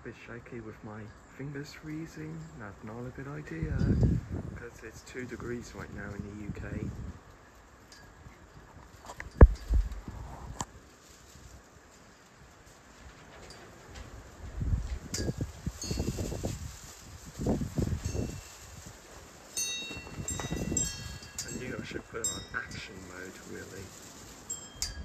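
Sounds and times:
wind gusting across microphone: 0.0s - 25.0s
light metallic chiming: 19.5s - 25.0s.

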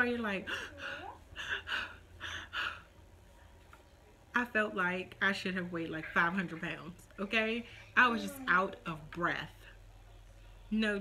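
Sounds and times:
woman panting: 0.4s - 2.9s.

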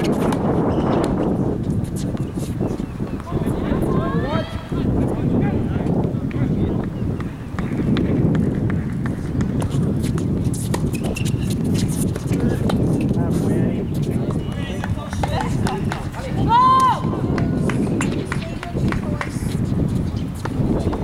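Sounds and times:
players' voices: 1.8s - 8.2s, 9.1s - 19.8s
footsteps on hard court: 5.8s - 21.0s.

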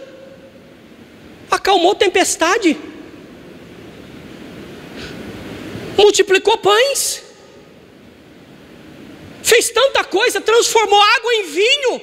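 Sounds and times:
rushing background hiss: 0.0s - 12.0s.

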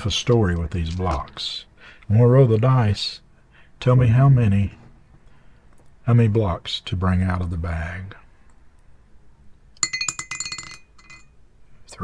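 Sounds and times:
die clattering in ceramic mug: 9.8s - 11.3s.

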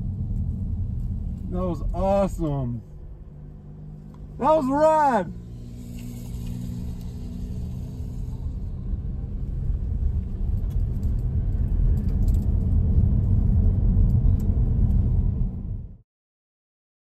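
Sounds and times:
low steady hum: 0.0s - 15.9s
road and tyre rumble: 0.0s - 16.0s.

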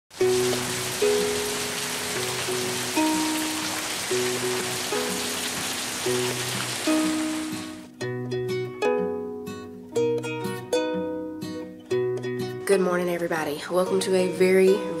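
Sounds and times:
rain falling on leafy trees: 0.1s - 7.9s
plucked-string background music: 0.2s - 15.0s.

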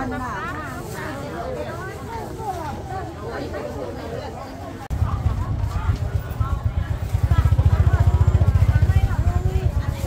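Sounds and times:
people talking: 0.0s - 10.0s
motorcycle engine running: 4.9s - 10.0s.

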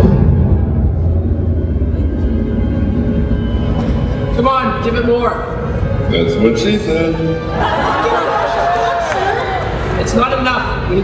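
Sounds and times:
deep rumbling thruster effect: 0.0s - 6.2s
background music: 0.0s - 11.0s.

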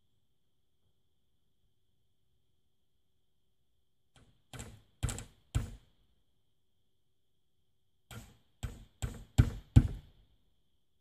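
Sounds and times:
hammer driving nails into wood: 4.2s - 5.9s, 8.1s - 10.1s.

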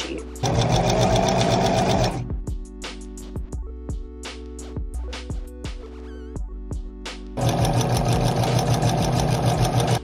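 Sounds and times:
background music with a beat: 0.0s - 10.0s
electric sewing machine running: 0.4s - 2.3s, 7.4s - 10.0s.

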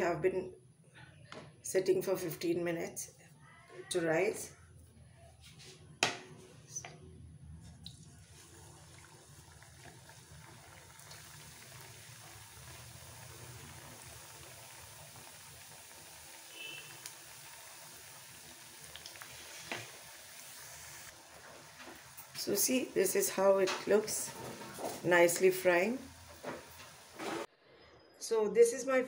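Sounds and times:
donuts sizzling in hot oil: 7.8s - 27.5s.

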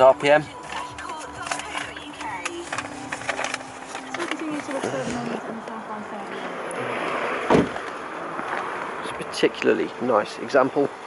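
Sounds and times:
car door shutting: 7.1s - 7.9s.

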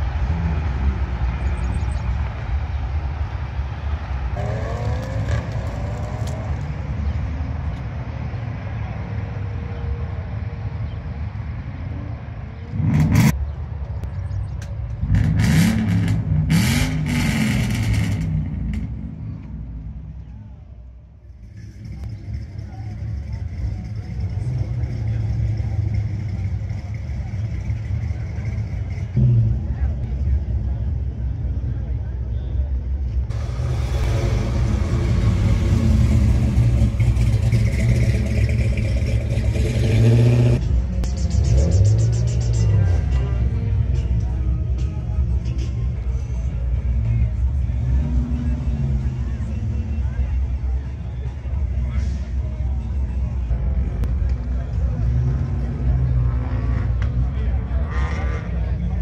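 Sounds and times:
car engine revving: 4.3s - 7.2s, 15.0s - 19.4s, 33.3s - 43.0s, 55.0s - 59.0s
car engine idling: 19.0s - 55.1s.

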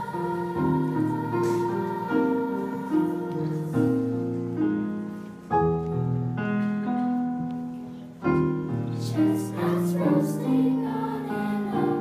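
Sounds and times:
piano slow sustained chords: 0.0s - 12.0s.

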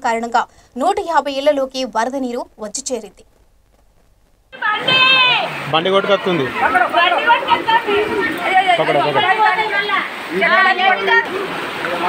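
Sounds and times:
people talking: 0.0s - 3.2s, 4.6s - 12.0s.

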